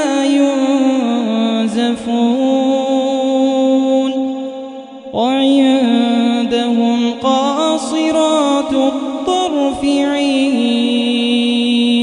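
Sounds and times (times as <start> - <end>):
man chanting recitation: 0.0 - 12.0.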